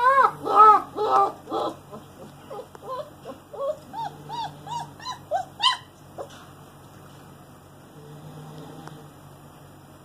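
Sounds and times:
puppy whimpering: 0:00.0 - 0:06.4.

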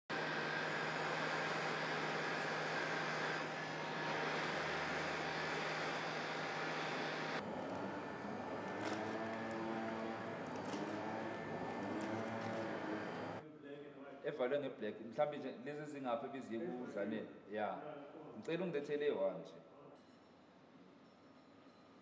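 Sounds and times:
heat gun blowing air: 0:00.1 - 0:13.4.

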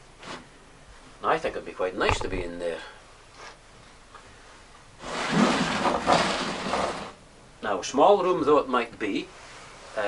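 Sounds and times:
wooden sliding door scraping: 0:05.0 - 0:07.2.

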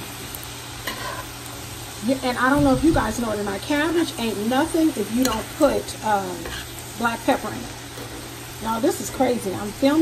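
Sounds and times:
cabbage and bacon sizzling: 0:00.0 - 0:10.0.

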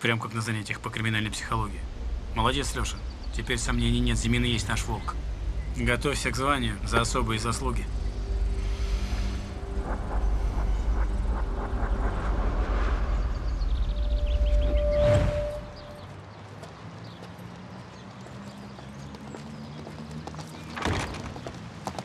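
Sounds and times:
dramatic film score: 0:00.0 - 0:16.3
rush of noise: 0:00.1 - 0:16.3
deep low rumble: 0:00.6 - 0:16.1.

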